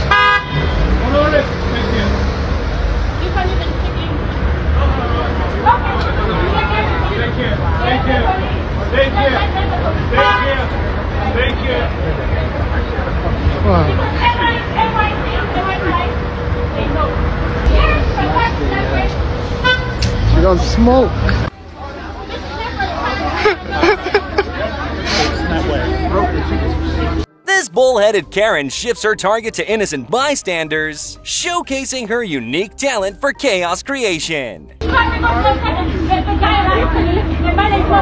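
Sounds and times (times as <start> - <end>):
vehicle horn toot: 0.0 - 0.9, 10.2 - 10.7
street traffic rumble: 0.0 - 27.3, 34.8 - 38.0.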